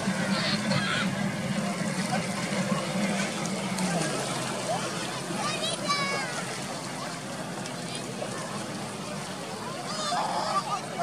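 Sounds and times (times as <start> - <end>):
people talking: 0.0 - 3.0, 3.8 - 11.0
jet ski engine drone: 0.0 - 11.0.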